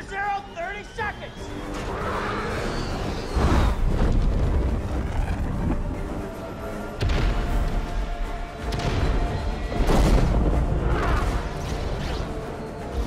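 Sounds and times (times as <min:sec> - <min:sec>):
dramatic film score: 0:00.0 - 0:13.0.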